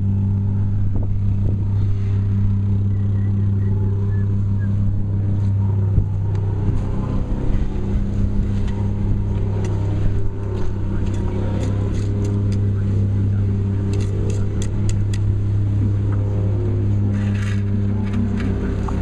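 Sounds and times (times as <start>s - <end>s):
engine running steadily: 0.0s - 19.0s.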